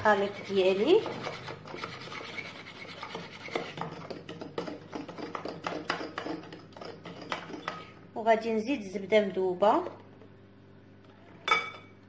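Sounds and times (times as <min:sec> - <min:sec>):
whisk scraping and sloshing batter: 0:00.0 - 0:08.0.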